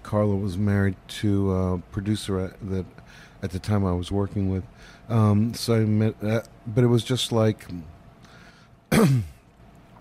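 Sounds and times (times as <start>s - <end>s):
man clearing his throat: 8.9s - 9.4s.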